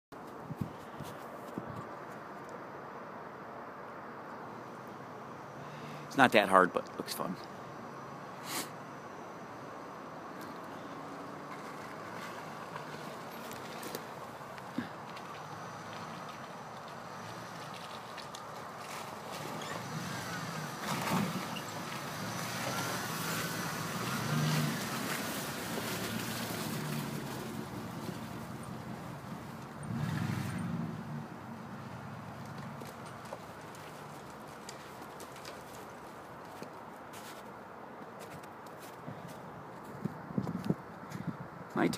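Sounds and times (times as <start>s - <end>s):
pickup engine revving: 19.3s - 32.9s.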